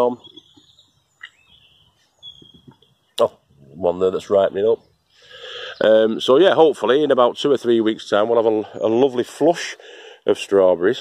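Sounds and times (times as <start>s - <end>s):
faint birdsong: 0.0s - 11.0s.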